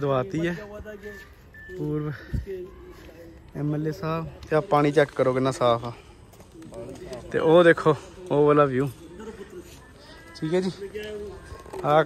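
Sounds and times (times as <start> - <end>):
man's voice: 0.0 - 6.0.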